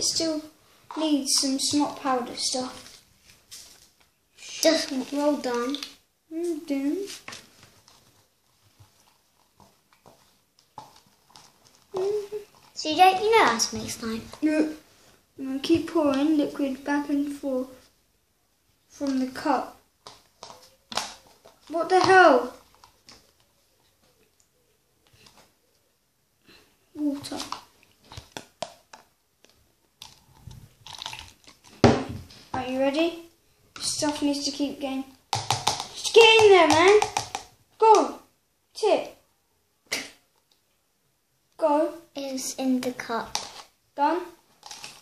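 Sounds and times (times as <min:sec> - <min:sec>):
plastic cups clicking and crinkling: 0:03.8 - 0:06.0, 0:07.2 - 0:14.6, 0:20.0 - 0:25.5, 0:27.0 - 0:32.8, 0:33.7 - 0:34.7, 0:35.3 - 0:37.6, 0:42.8 - 0:43.8, 0:44.5 - 0:45.0
stirring slime in plastic cup: 0:07.8 - 0:14.7, 0:19.0 - 0:23.4, 0:33.8 - 0:37.6.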